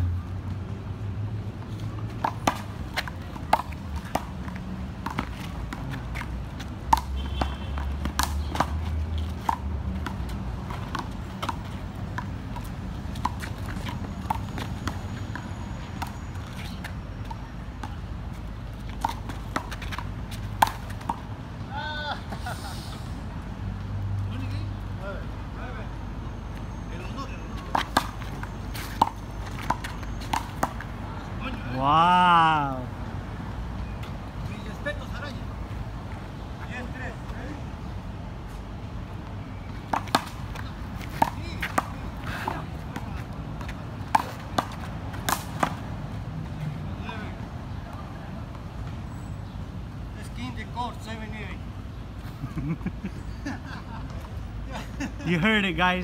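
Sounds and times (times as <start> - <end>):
low city hum: 0.0 - 56.0.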